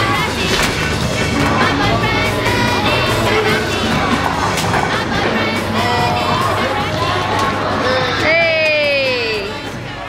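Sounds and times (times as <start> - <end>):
bowling pins clattering: 0.0 - 6.6
music: 0.0 - 10.0.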